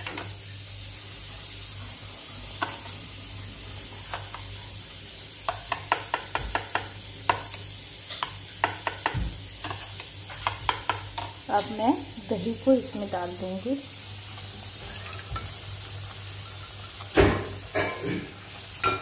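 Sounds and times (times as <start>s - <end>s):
paste sizzling in oil: 0.0s - 19.0s.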